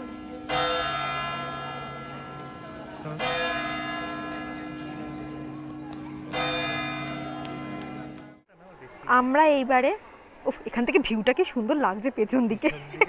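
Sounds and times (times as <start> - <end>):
clock-tower bell striking: 0.0 - 8.4.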